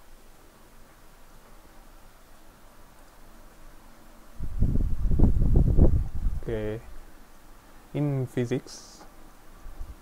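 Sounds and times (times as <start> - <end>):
air buffeting microphone: 4.4 - 7.0.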